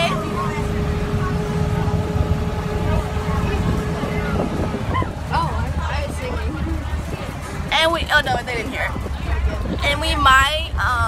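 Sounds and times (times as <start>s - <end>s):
bus engine and road rumble: 0.0s - 11.0s.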